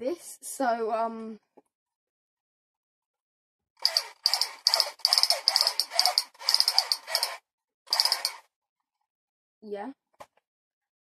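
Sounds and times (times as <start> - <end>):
toy gun rattling bursts: 3.8 - 8.4.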